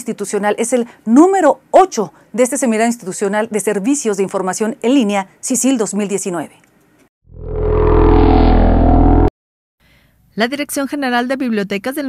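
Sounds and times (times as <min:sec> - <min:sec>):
synthesized chord sting: 0:07.3 - 0:09.3.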